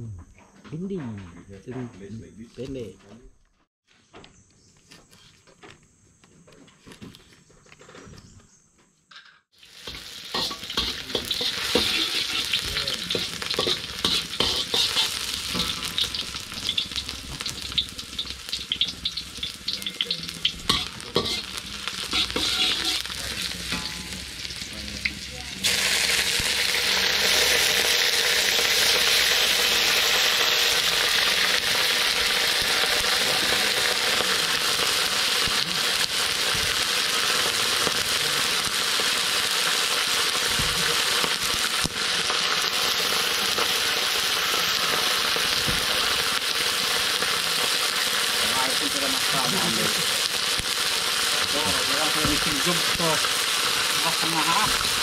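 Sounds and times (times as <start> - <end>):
loud steady sizzle of meat: 9.5 - 55.0
onions sizzling in oil: 9.5 - 55.0
metal spatula scraping a wok: 9.7 - 24.6.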